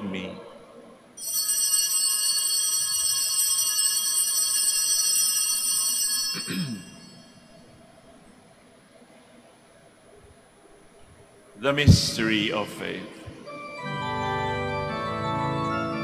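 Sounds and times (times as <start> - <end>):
altar bells ringing: 1.2 - 7.6, 13.5 - 16.0
man clearing throat: 6.4 - 7.1.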